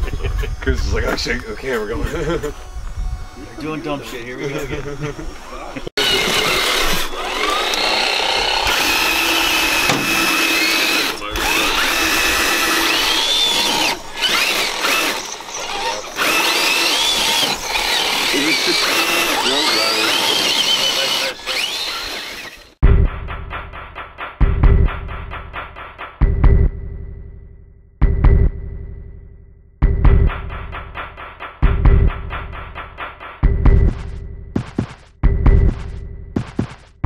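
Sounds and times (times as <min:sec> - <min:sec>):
rc truck motors whining: 0:00.0 - 0:22.8
electronic music with heavy beat: 0:22.8 - 0:26.7, 0:29.8 - 0:37.0.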